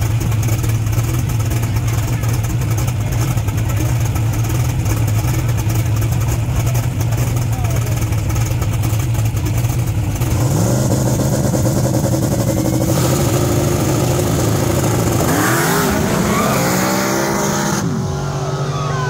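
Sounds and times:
car engines idling: 0.0s - 19.0s.

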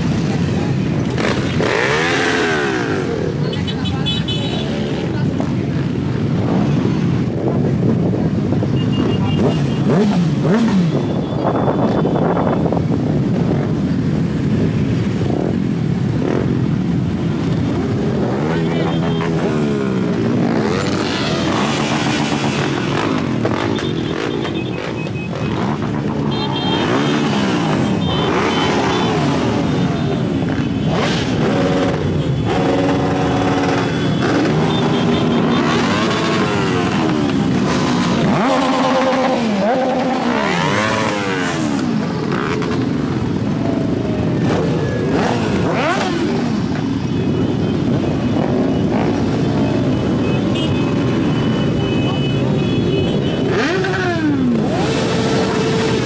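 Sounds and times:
motorcycles revving: 0.0s - 56.0s.

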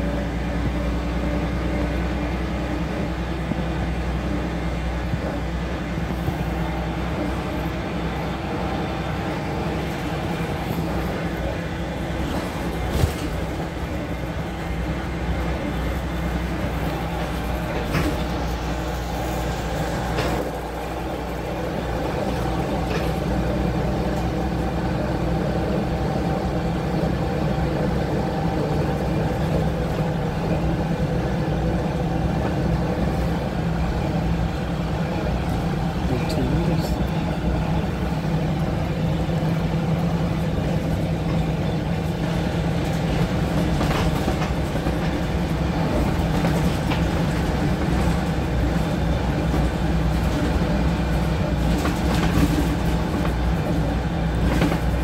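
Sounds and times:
bus engine drone: 0.0s - 55.0s.

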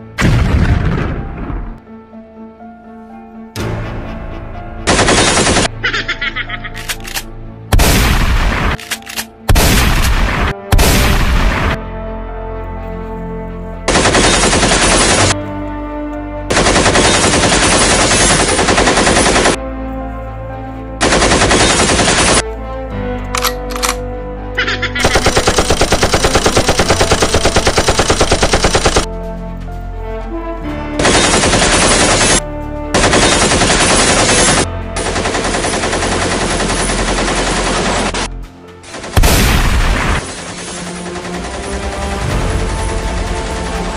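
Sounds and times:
background music: 0.0s - 43.9s
machine-gun bursts: 4.9s - 5.7s, 13.9s - 15.4s, 16.5s - 19.6s, 21.0s - 22.4s, 25.0s - 29.1s, 31.0s - 32.4s, 33.0s - 38.3s.

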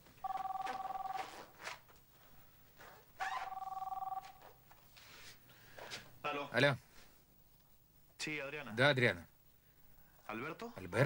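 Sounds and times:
telephone ringing: 0.2s - 1.5s, 3.3s - 4.6s.

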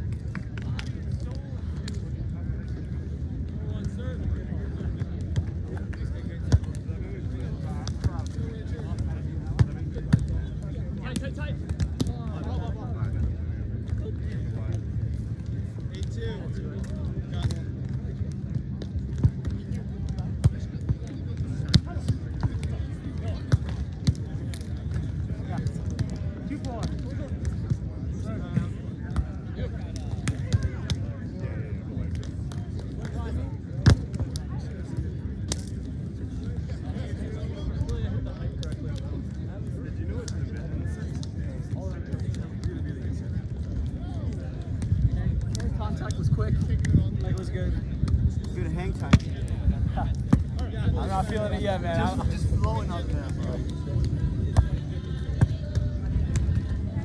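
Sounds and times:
hands slapping a volleyball: 55.4s - 56.6s.

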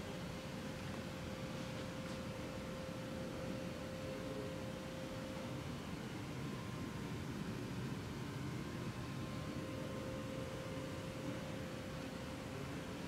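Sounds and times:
faint constant hum: 0.0s - 13.0s.

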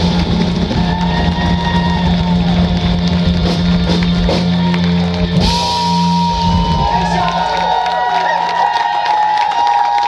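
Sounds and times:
drum and cymbal hits: 0.0s - 7.3s
rock band playing: 0.0s - 9.6s.

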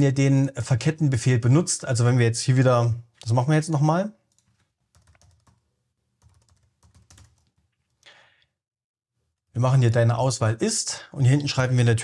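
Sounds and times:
faint keyboard typing: 4.3s - 8.1s.

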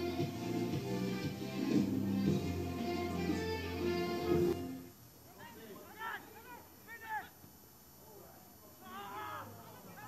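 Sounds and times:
faint field ambience: 0.0s - 10.0s
people shouting: 8.8s - 10.0s.

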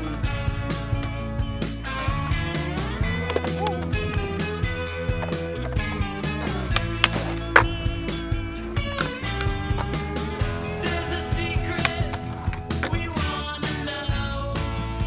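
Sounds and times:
wheels rolling on concrete: 1.8s - 13.8s
skateboard clacks: 2.0s - 13.6s.

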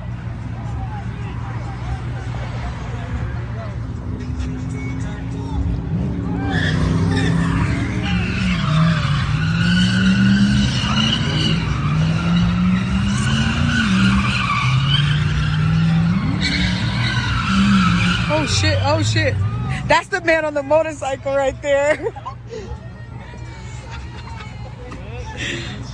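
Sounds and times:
car engines revving: 0.0s - 25.9s
tyres squealing: 4.4s - 22.0s.

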